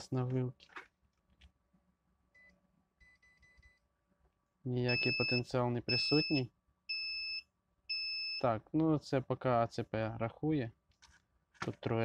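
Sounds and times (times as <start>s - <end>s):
multimeter high beep: 4.9s - 8.5s.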